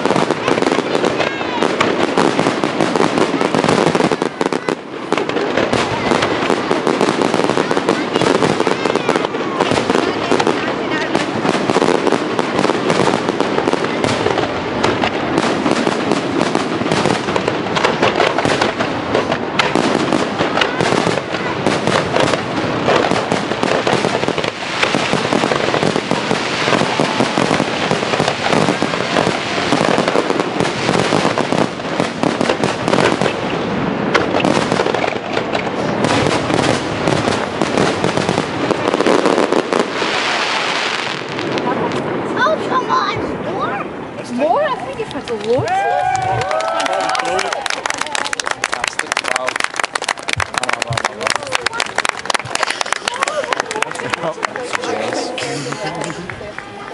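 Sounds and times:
fireworks bursting and crackling: 0.0 - 56.9.

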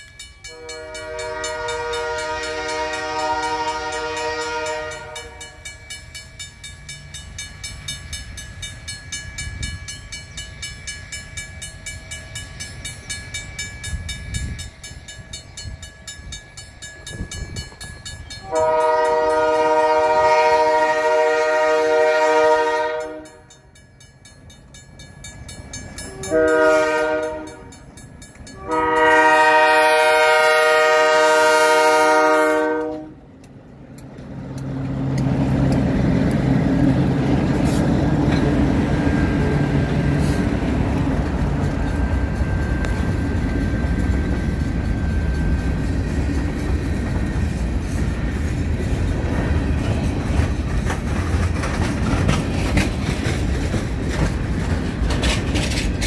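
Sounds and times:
crossing signal bell ringing: 0.0 - 33.1, 34.6 - 49.8
low rumble of diesel locomotives: 0.0 - 56.0
locomotive air horn blasts: 0.5 - 5.7, 18.4 - 23.6, 26.1 - 27.8, 28.6 - 33.2.

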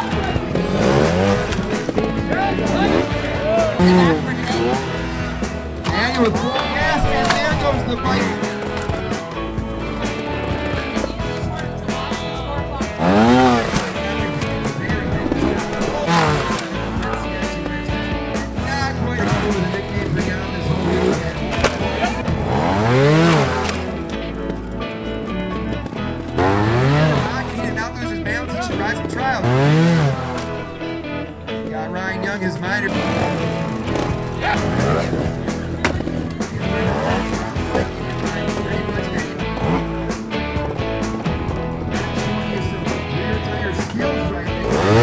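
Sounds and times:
background music: 0.0 - 45.0
motorcycle engine revving: 0.0 - 45.0.

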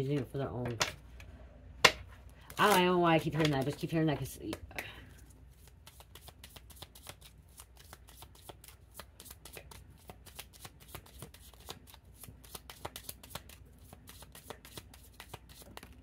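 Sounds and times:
cards being shuffled: 2.4 - 16.0.

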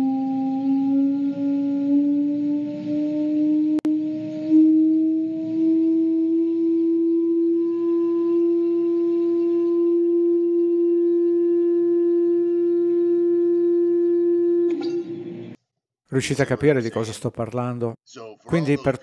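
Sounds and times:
vibrating plate hum: 0.0 - 15.6.

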